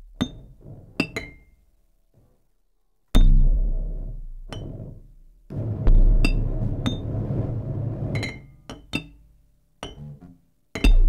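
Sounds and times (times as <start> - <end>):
low drone: 3.3 - 8.6.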